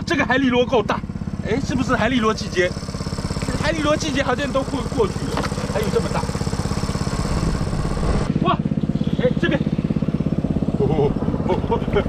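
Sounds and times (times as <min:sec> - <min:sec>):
engine-driven water pump chugging: 0:00.0 - 0:12.0.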